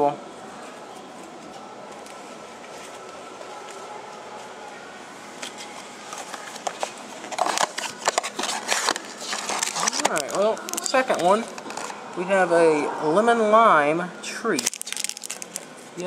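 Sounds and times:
cardboard and plastic crinkling: 5.3s - 12.0s, 14.6s - 15.8s.

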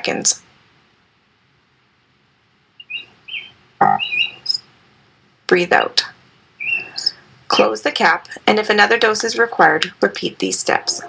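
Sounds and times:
small bird chirping: 2.8s - 4.7s, 6.6s - 7.2s.

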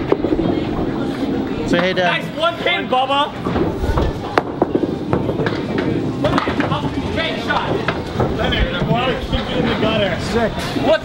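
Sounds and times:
bowling ball rolling on lane: 0.0s - 2.4s, 3.3s - 10.3s
chattering voices: 0.0s - 11.0s.

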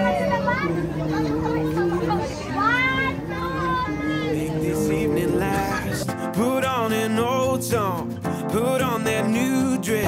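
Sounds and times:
children chattering and calling: 0.0s - 7.0s.

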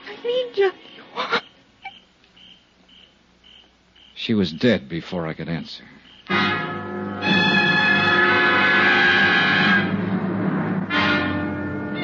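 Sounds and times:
faint cricket chirps: 0.0s - 6.4s.

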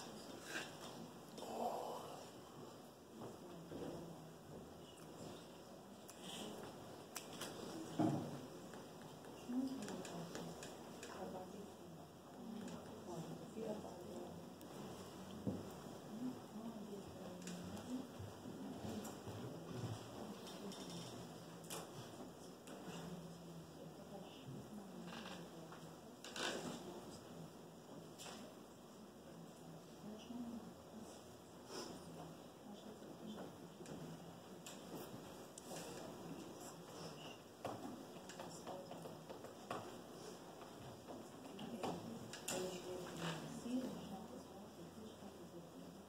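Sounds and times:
faint low murmuring: 0.0s - 46.0s
faint clicks and taps: 3.1s - 11.6s, 33.2s - 43.5s.

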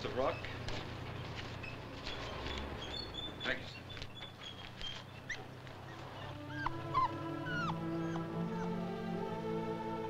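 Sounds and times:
high gliding animal calls: 2.2s - 8.8s
orchestral film music: 6.2s - 10.0s.

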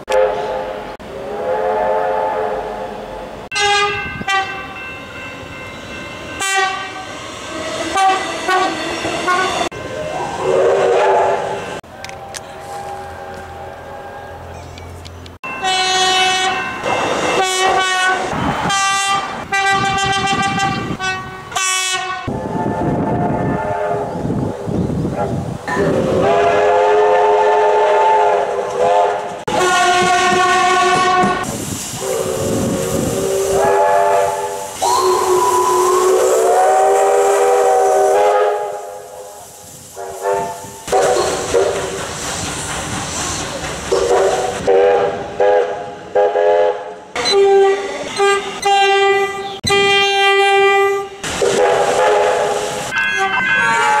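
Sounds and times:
train horns chord blasts: 0.0s - 4.8s, 6.4s - 9.7s, 10.4s - 14.4s, 15.5s - 24.6s, 25.7s - 42.0s, 43.9s - 54.0s.

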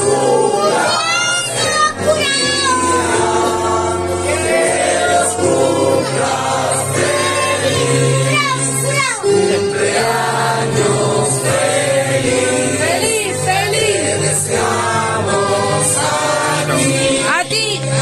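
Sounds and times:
group singing: 0.0s - 18.0s
musical backing: 0.0s - 18.0s.

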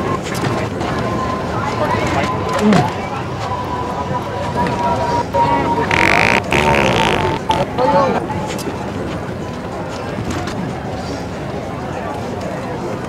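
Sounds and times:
people chattering: 0.0s - 13.0s
wet fart sound: 5.9s - 7.7s.

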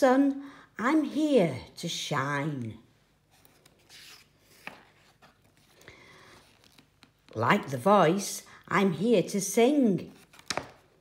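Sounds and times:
paper page rustling: 3.3s - 7.4s, 10.0s - 11.0s
page flip tick: 10.2s - 10.8s.

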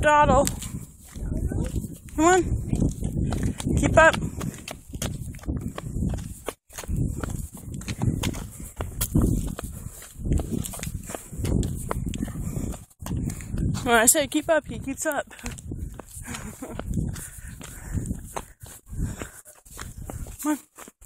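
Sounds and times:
walking footsteps: 0.3s - 21.0s.

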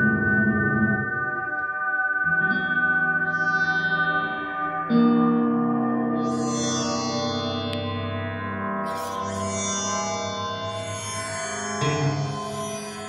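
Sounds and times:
experimental electric guitar music: 0.0s - 13.0s.

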